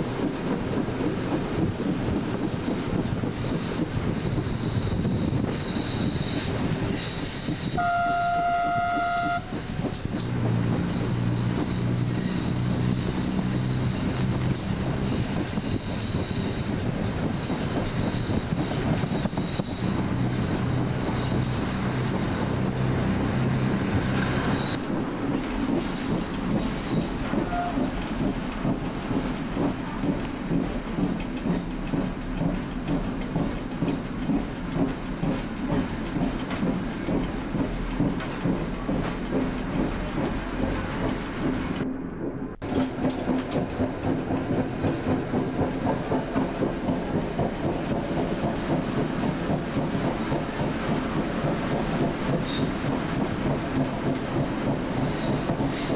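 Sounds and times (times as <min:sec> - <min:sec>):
train running noise: 0:00.0 - 0:55.9
train horn: 0:07.6 - 0:10.0, 0:27.4 - 0:27.9.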